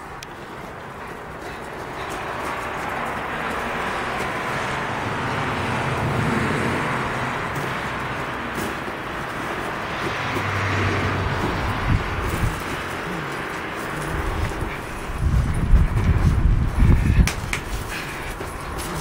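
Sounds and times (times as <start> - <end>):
road vehicle passing: 0.0 - 19.0.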